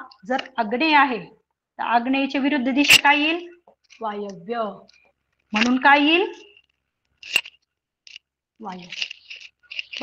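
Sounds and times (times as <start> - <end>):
woman's voice: 0.0 - 6.6, 8.6 - 9.0.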